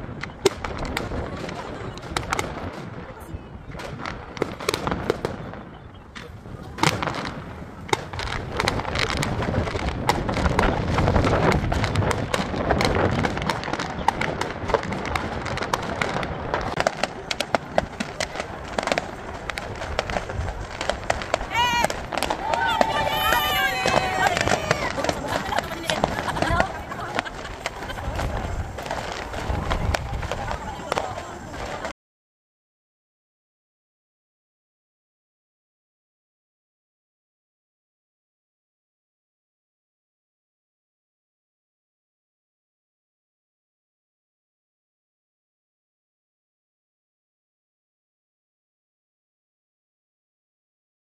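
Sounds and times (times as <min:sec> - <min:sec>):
firework bangs: 0:00.0 - 0:31.9
fireworks crackling pops: 0:00.0 - 0:32.0
people talking: 0:00.8 - 0:04.0, 0:05.4 - 0:09.9, 0:16.5 - 0:31.9.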